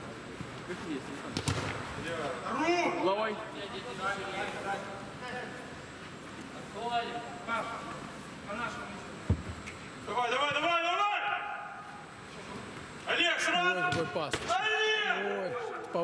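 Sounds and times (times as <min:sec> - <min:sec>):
football kicked thump: 0:09.3 - 0:09.6.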